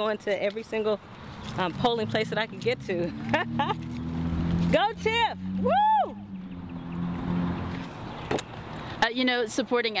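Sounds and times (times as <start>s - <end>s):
car engine humming: 1.3s - 8.7s.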